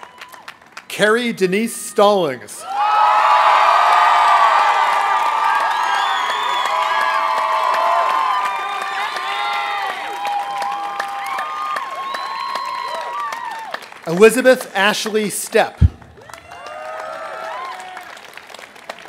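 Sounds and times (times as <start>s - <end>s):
crowd clapping: 0.0s - 1.3s, 2.8s - 19.0s
crowd cheering and shouting: 1.9s - 13.8s, 15.8s - 18.1s.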